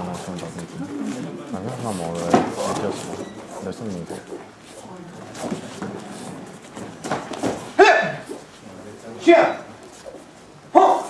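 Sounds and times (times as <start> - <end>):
bare feet slapping on mats: 5.3 - 8.5
person yelling: 7.8 - 8.2, 10.7 - 11.0.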